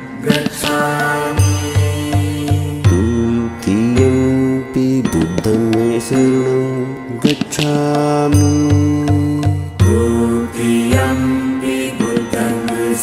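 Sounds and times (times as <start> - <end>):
chant in long held notes: 0.0 - 13.0
instrumental music: 0.0 - 13.0
low beats: 0.0 - 13.0.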